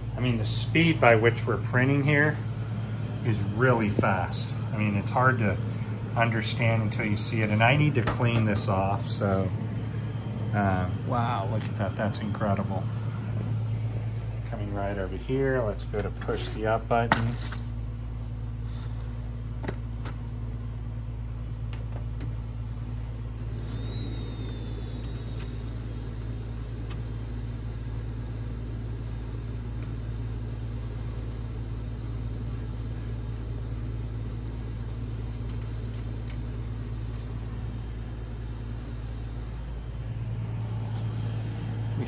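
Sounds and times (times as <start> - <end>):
inkjet printer humming: 0.0 - 30.0, 32.4 - 42.0
printer high whine: 0.0 - 42.0.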